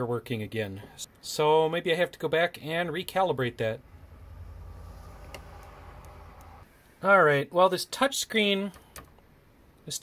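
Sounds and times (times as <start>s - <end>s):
low steady hum: 2.8s - 7.0s.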